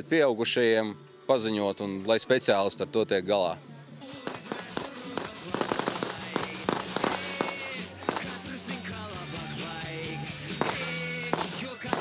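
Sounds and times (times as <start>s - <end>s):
background music: 0.0s - 12.0s
submachine guns firing: 4.2s - 8.6s, 10.6s - 12.0s.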